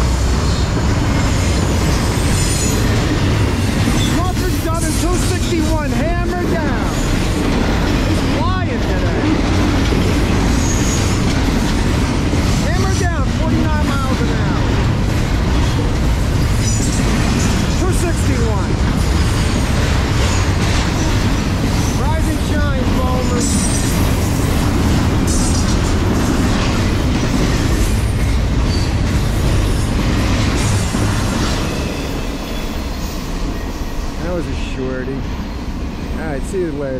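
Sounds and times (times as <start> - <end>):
train wheels rumbling on rail: 0.0 - 36.9
wheel squeals: 10.5 - 11.5.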